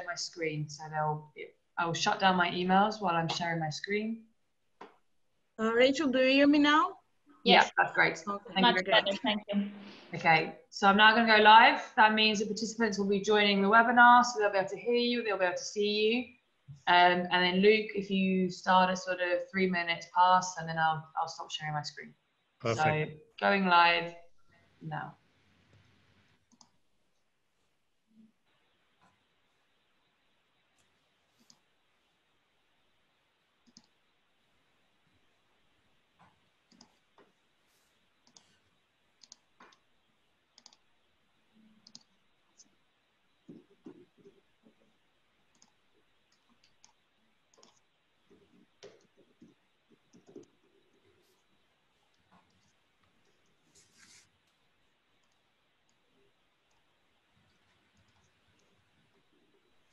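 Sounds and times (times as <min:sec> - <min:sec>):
computer mouse clicks: 0:26.5 - 0:26.8, 0:30.8 - 0:31.7, 0:33.6 - 0:34.0, 0:36.2 - 0:37.1, 0:38.2 - 0:38.6, 0:39.2 - 0:39.9, 0:40.6 - 0:40.9, 0:41.8 - 0:42.7, 0:45.5 - 0:51.0, 0:55.2 - 0:56.0, 0:57.9 - 0:58.8.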